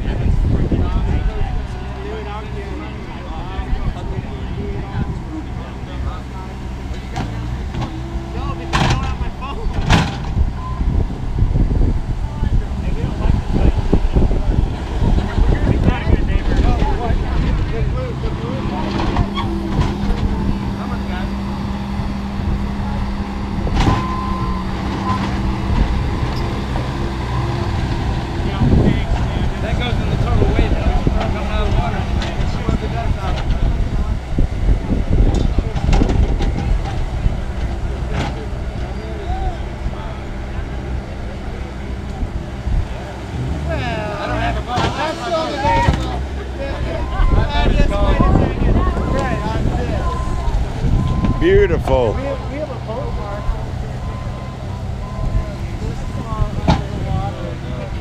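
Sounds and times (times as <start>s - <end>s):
loader engine running: 0.0s - 58.0s.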